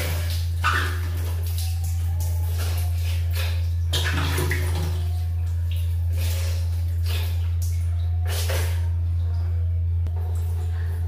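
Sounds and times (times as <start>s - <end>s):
water splashing on face: 0.0s - 8.9s
steady low hum: 0.0s - 11.0s.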